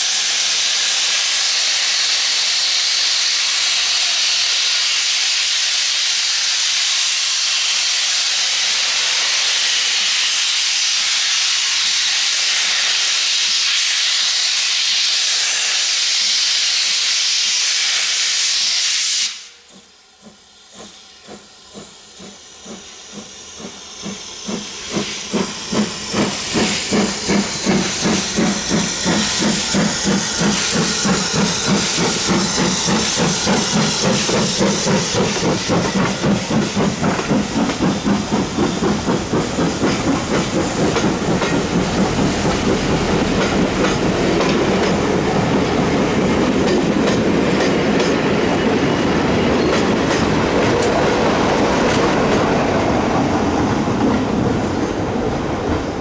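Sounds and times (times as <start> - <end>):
steam hiss: 0.0 - 56.0
steam locomotive exhaust beats: 0.0 - 56.0.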